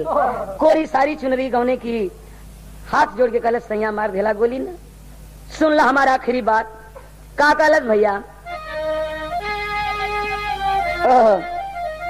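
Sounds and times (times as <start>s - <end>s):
harmonium sustained notes: 8.4s - 12.0s.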